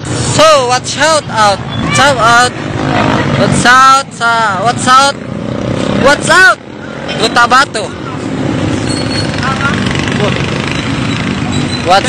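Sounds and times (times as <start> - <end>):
roadside traffic noise: 0.0 - 12.0.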